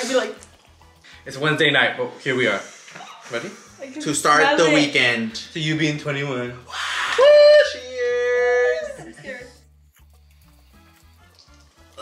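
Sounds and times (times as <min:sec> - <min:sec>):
person cheering woo: 0:06.7 - 0:09.5.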